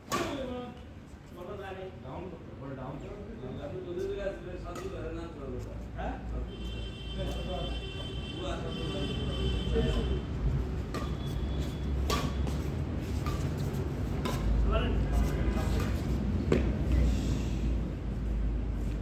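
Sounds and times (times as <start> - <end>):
rackets hitting shuttlecock: 0.0 - 0.4, 4.7 - 5.2, 10.8 - 14.6.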